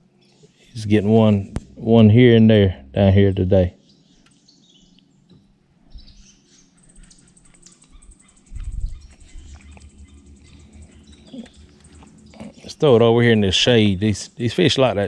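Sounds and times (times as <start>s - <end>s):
birds singing: 0.0s - 15.0s
dull low bump: 0.9s - 3.5s
high bird trill: 5.9s - 15.0s.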